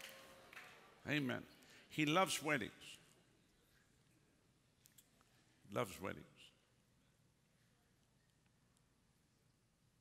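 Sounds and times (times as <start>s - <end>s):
man speaking: 1.0s - 3.2s, 5.6s - 6.7s.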